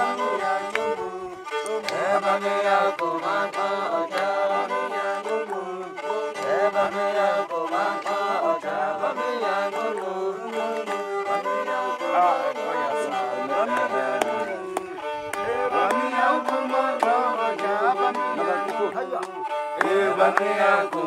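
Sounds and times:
bowed fiddle playing tune: 0:00.0 - 0:21.0
person singing: 0:00.0 - 0:21.0
sharp rhythmic taps: 0:00.0 - 0:21.0.

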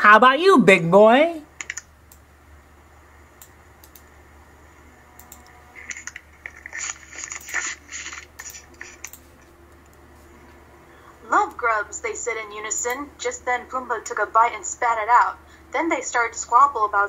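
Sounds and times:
steady low hum: 0:00.0 - 0:17.0
faint clicks and crackles: 0:01.6 - 0:02.3, 0:05.1 - 0:10.6.

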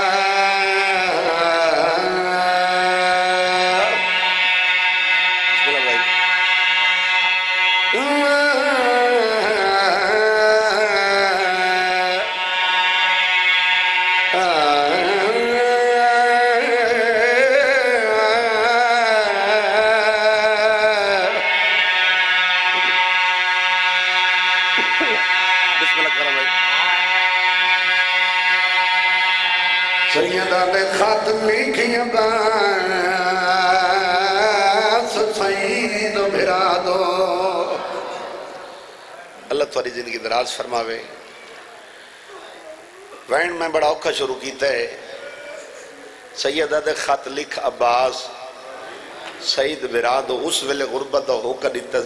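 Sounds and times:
man singing a mourning chant: 0:00.0 - 0:06.8, 0:07.9 - 0:38.4.

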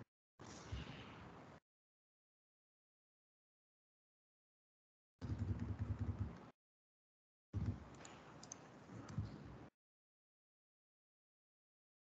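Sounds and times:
computer keyboard typing: 0:05.2 - 0:06.5, 0:07.6 - 0:09.2.

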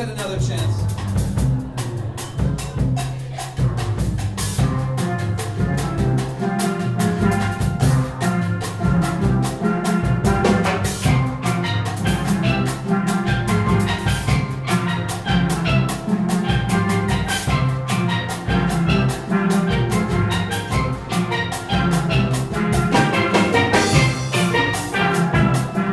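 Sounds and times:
steel band playing latin music: 0:00.0 - 0:25.9.

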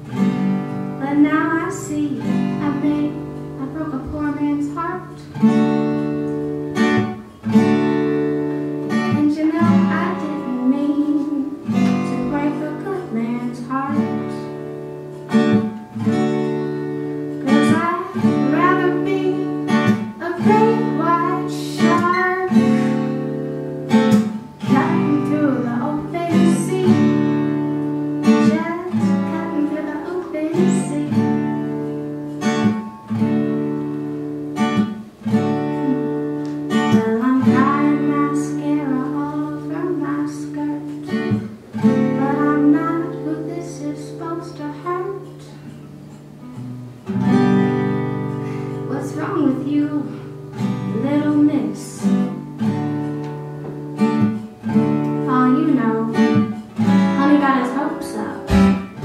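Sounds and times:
acoustic guitar strumming: 0:00.0 - 0:59.0
person singing: 0:09.0 - 0:14.5, 0:17.4 - 0:23.1, 0:24.6 - 0:27.2, 0:28.3 - 0:31.4, 0:35.6 - 0:45.7, 0:48.8 - 0:52.4, 0:55.2 - 0:59.0.

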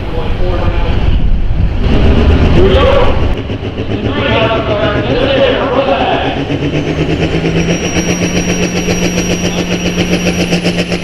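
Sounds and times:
diesel tractor engine rumbling: 0:00.0 - 0:11.0.

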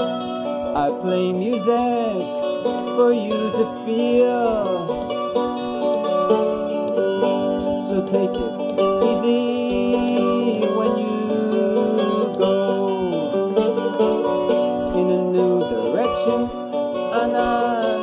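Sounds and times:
acoustic string instrument strummed: 0:00.0 - 0:18.0
man singing: 0:00.7 - 0:05.1, 0:06.0 - 0:18.0.

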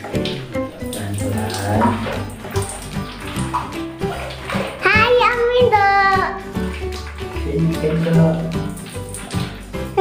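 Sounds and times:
background music: 0:00.0 - 0:10.0
tap water running into plastic tank: 0:00.0 - 0:10.0.

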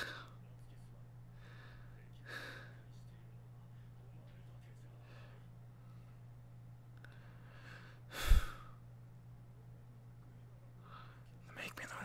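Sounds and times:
faint breathing: 0:00.0 - 0:00.4, 0:01.3 - 0:02.9, 0:05.0 - 0:06.3, 0:07.0 - 0:08.8, 0:10.8 - 0:11.4.

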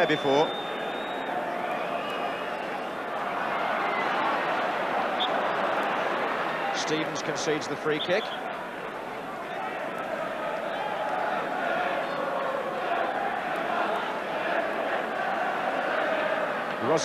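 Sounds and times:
stadium crowd din: 0:00.0 - 0:17.0.

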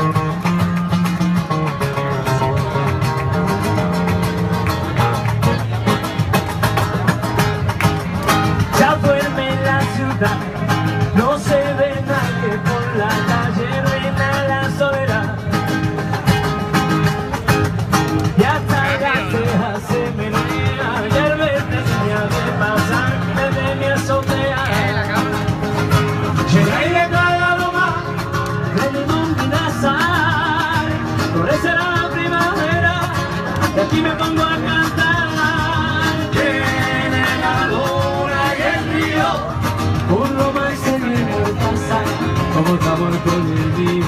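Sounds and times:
acoustic guitar strumming: 0:00.0 - 0:44.0
man singing: 0:08.6 - 0:16.0, 0:18.3 - 0:25.6, 0:26.2 - 0:44.0.

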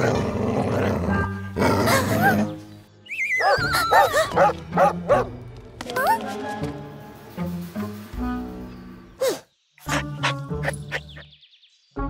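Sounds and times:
background music: 0:00.0 - 0:12.0
cartoon dog barking: 0:03.4 - 0:05.3.

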